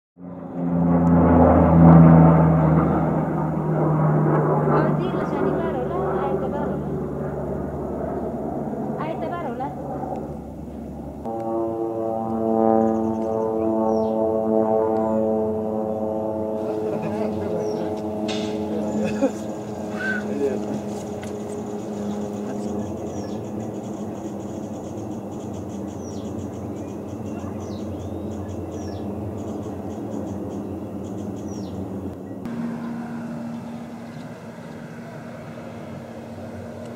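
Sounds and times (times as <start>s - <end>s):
turboprop plane droning: 0.2s - 36.9s
birds chirping faintly: 12.8s - 14.2s, 15.9s - 18.1s, 18.8s - 36.9s.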